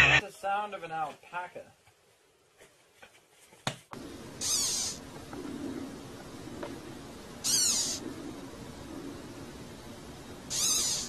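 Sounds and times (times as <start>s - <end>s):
caterpillar squeaking: 4.4s - 5.0s, 7.4s - 8.0s, 10.5s - 11.0s.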